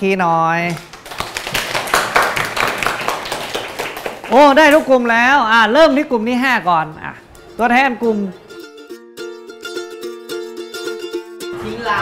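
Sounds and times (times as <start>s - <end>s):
group clapping hands: 0.6s - 5.0s.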